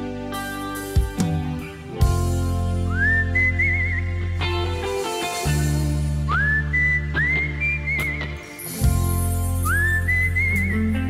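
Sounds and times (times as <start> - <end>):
keyboard chords: 0.0 - 11.0
low bass: 0.0 - 11.0
whistled melody: 2.2 - 11.0.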